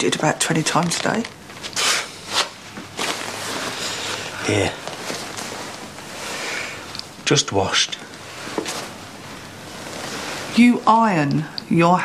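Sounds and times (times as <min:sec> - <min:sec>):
leather jacket rustling: 0:01.7 - 0:06.4.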